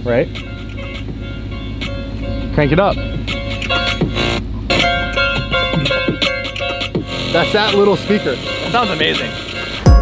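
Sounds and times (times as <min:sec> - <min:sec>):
music from portable speaker: 0:00.0 - 0:10.0.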